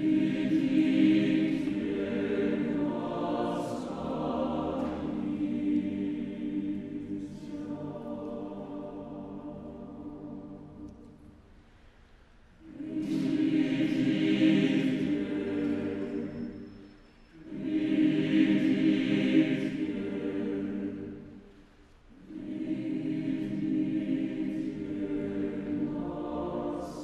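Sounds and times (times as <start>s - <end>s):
mixed choir singing chords: 0.0s - 11.5s, 12.5s - 27.0s.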